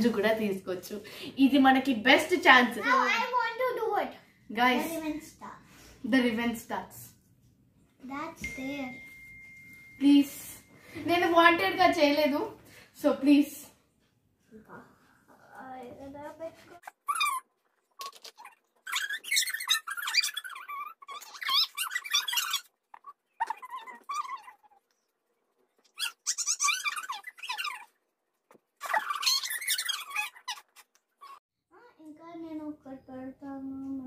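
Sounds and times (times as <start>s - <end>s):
high-pitched squeaky voice: 16.8s - 24.8s, 25.9s - 27.9s, 28.8s - 31.4s.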